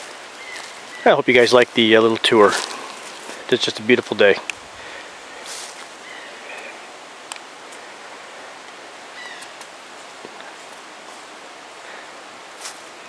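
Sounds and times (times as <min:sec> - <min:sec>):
outdoor background hiss: 0:00.0 - 0:13.0
faint clicks: 0:07.3 - 0:07.5.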